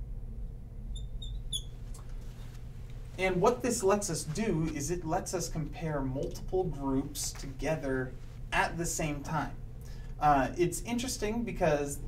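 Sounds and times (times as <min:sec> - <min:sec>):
low room hum: 0:00.0 - 0:12.0
marker squeaking on glass: 0:00.9 - 0:01.8.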